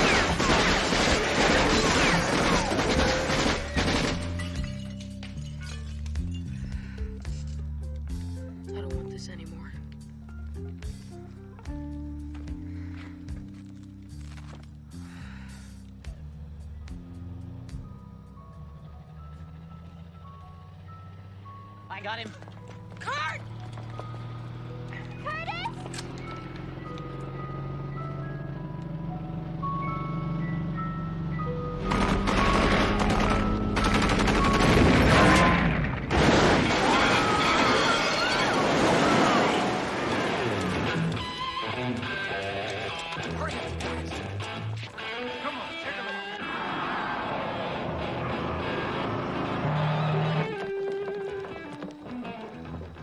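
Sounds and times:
film music: 0:06.2 - 0:37.8, 0:38.4 - 0:53.0
low sustained film score notes: 0:14.9 - 0:35.1
ice cream truck jingle: 0:17.0 - 0:35.4
loud vehicle crash: 0:31.8 - 0:41.2
rapid automatic gunfire: 0:31.9 - 0:35.3.

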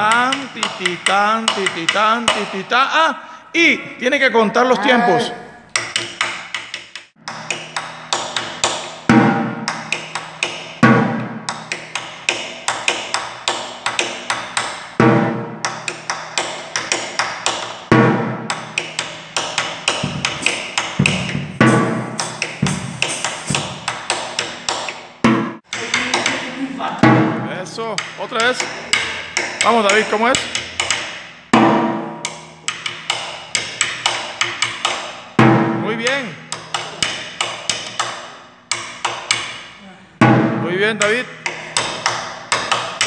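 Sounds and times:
deep strokes on drumhead: 0:20.0 - 0:23.9.

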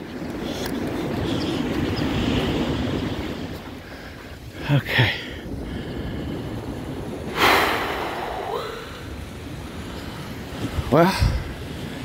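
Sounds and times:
surf: 0:00.0 - 0:12.0
wind noise on microphone: 0:00.0 - 0:12.0
person exhaling with a sigh: 0:07.3 - 0:09.2.

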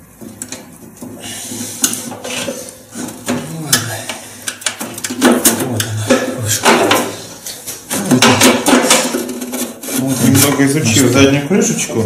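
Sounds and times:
metal scraping and knocking: 0:04.6 - 0:11.2.

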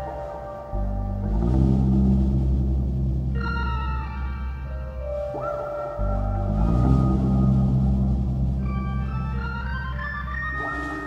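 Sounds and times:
deep sustained bass tones: 0:00.0 - 0:11.0.

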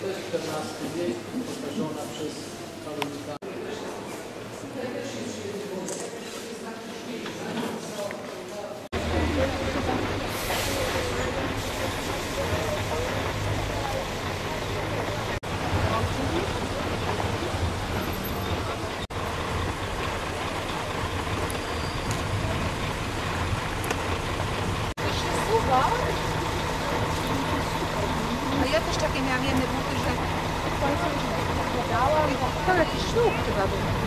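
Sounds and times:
indistinct voices: 0:09.0 - 0:34.0
vehicle engine running: 0:09.0 - 0:34.0.

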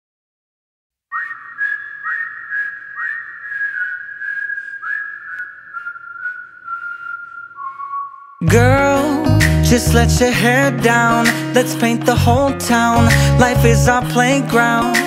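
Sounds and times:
whistled melody: 0:01.1 - 0:09.8.

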